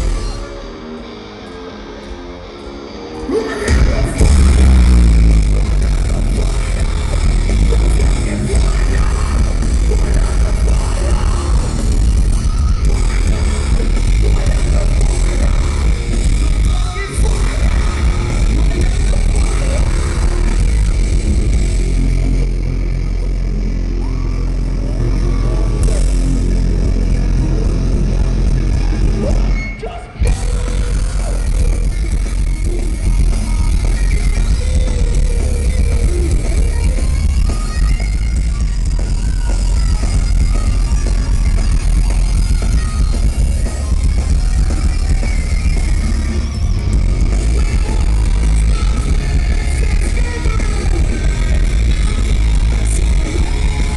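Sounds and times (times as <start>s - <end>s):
bass guitar: 0.0s - 53.9s
distorted electric guitars: 0.0s - 53.9s
live rock band playing: 0.0s - 53.9s
sliding guitar tones: 0.0s - 53.9s.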